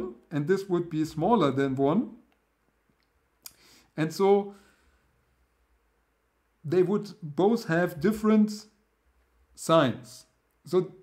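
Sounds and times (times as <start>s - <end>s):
person speaking: 0.0s - 2.4s, 3.4s - 4.6s, 6.6s - 8.8s, 9.5s - 11.0s
faint hiss: 0.0s - 11.0s.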